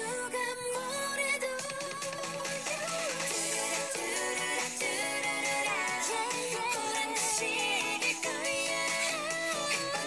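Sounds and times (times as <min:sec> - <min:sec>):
woman singing pop song: 0:00.0 - 0:10.0.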